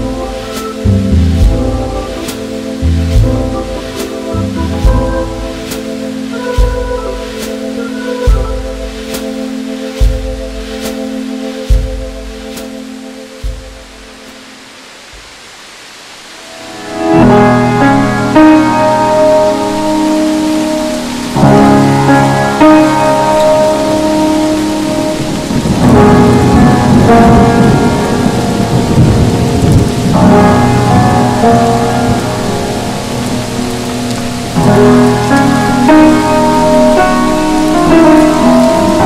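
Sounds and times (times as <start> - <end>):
thunder rumble: 0.0 - 12.6, 16.5 - 39.0
soft jazz: 0.0 - 15.4
steady rain: 0.0 - 39.0.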